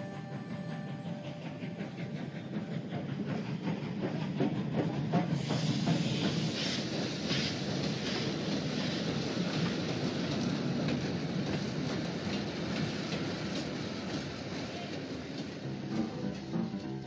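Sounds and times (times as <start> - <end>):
steam train rolling: 0.0 - 17.0
wheels clicking over rails: 0.0 - 17.0.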